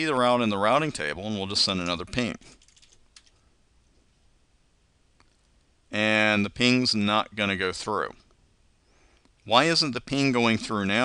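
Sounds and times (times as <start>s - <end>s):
man's voice: 9.5s - 11.0s.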